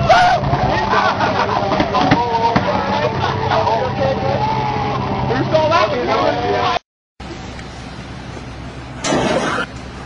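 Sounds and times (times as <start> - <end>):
people talking: 0.0 - 7.4.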